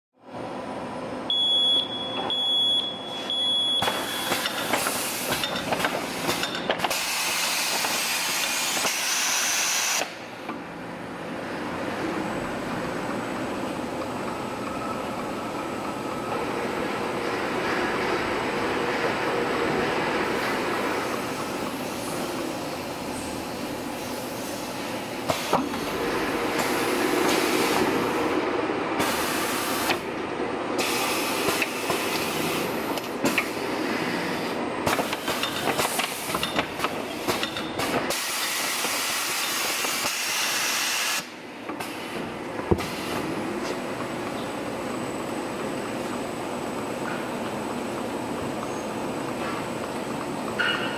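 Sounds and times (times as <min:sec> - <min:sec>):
machine running with hissing: 0:03.8 - 0:50.9.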